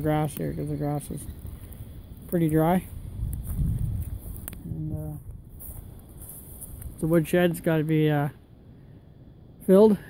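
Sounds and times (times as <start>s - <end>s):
faint outdoor background noise: 0.0s - 10.0s
man saying uh: 4.6s - 5.2s.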